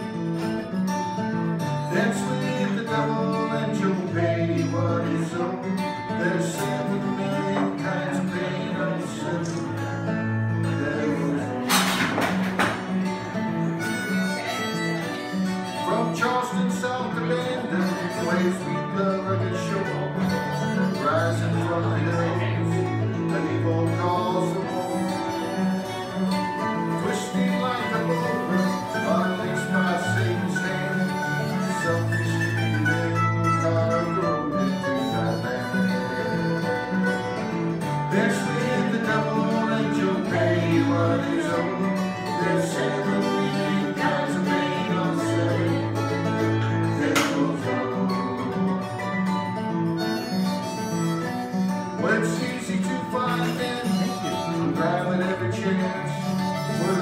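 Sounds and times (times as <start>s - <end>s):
acoustic guitar: 0.0s - 57.0s.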